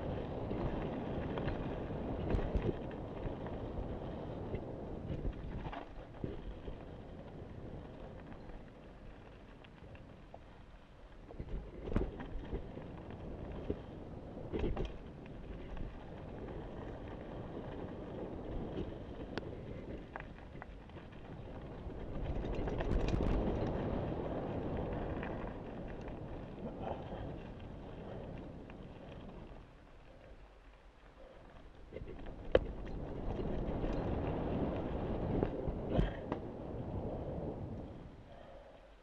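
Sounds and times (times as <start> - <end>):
wind rush on microphone: 0.0 - 30.5, 31.1 - 39.0
bike tyres rolling over dirt: 0.0 - 39.0
bike knocks and rattles: 22.0 - 23.9.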